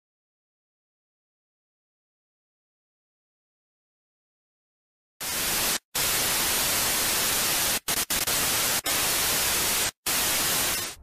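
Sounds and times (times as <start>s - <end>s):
television static hiss: 5.2s - 11.0s.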